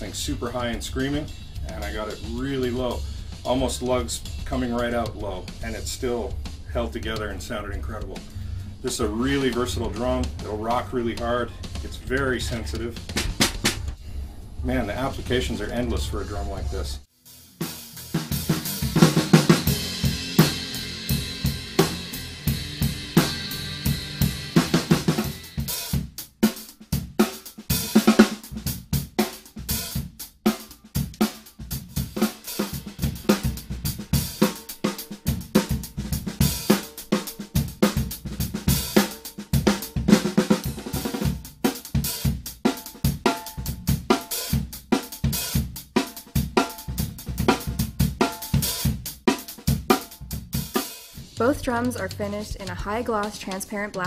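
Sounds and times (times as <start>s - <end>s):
drum kit groove: 0.0s - 14.0s, 14.6s - 54.0s.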